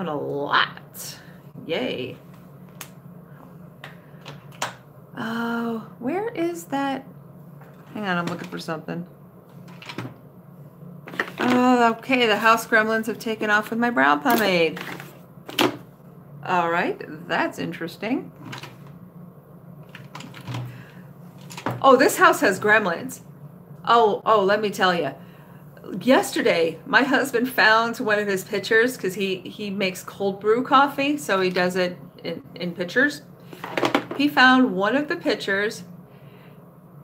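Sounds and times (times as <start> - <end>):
steady low hum: 0.0 - 37.0.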